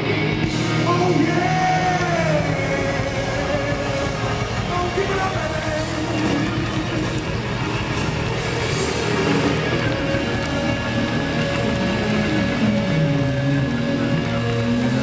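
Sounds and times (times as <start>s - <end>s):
electric guitars bending notes: 0.0s - 15.0s
rock band playing: 0.0s - 15.0s.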